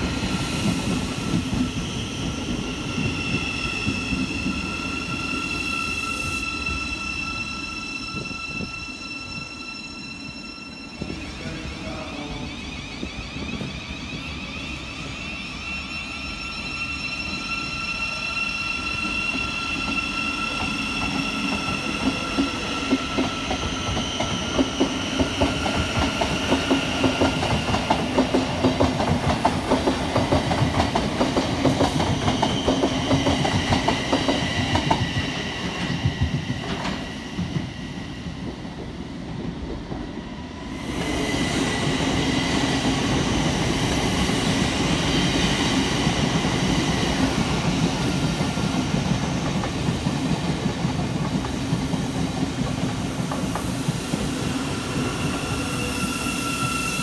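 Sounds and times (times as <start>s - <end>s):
electric train whine: 0.0s - 57.0s
train wheels clattering on rails: 19.3s - 40.2s, 40.9s - 56.0s.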